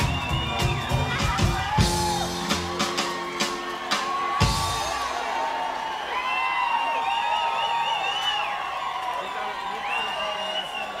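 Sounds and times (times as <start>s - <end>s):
rockabilly band playing: 0.0s - 5.7s
crowd cheering and whooping: 0.0s - 11.0s.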